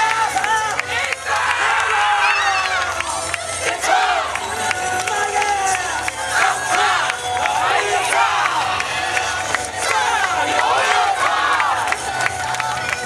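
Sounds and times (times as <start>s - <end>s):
group shouting calls: 0.0s - 4.4s, 5.3s - 11.9s
dance music: 0.0s - 13.0s.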